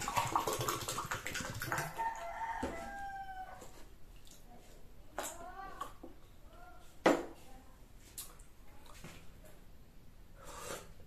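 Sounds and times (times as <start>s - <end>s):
rooster crowing: 2.0s - 3.7s.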